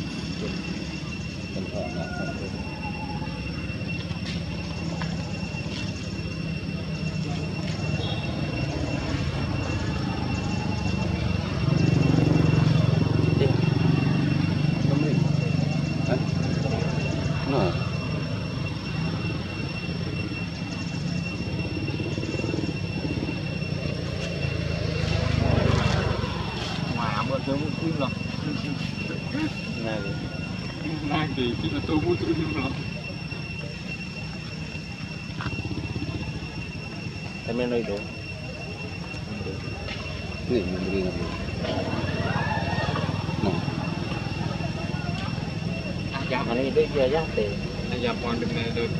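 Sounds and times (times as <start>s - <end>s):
faint voices talking: 0.0s - 48.9s
thin high steady tones: 0.0s - 48.9s
motor engine running: 3.5s - 48.9s.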